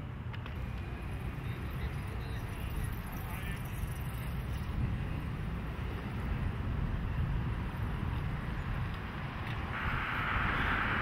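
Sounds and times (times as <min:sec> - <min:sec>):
traffic rumble: 0:00.0 - 0:11.0
wind on microphone: 0:04.6 - 0:11.0.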